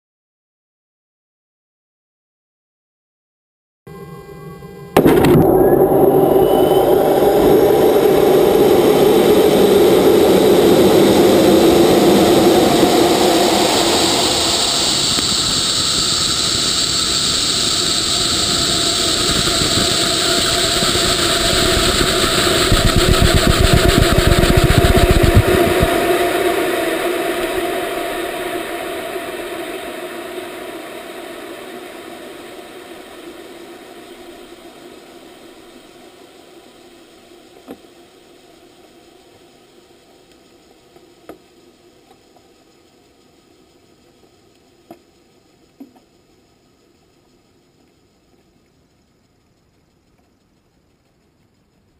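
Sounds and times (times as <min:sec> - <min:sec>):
rocket motor roar: 0:04.9 - 0:42.7
deep rumble: 0:05.0 - 0:37.5.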